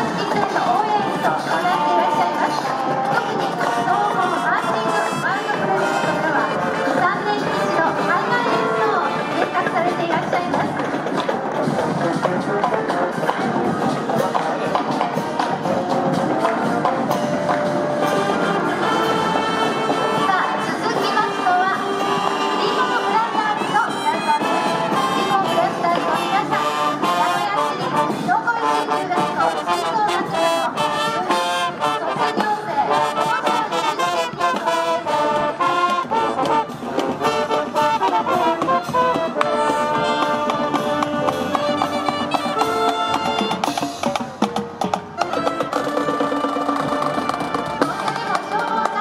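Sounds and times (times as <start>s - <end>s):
drums: 0.0s - 49.0s
marching band playing: 0.0s - 49.0s.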